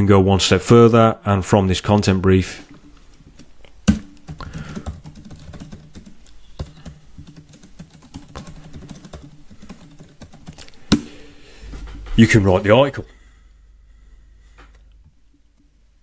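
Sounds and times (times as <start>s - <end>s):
typing on computer keyboard: 3.4s - 10.7s.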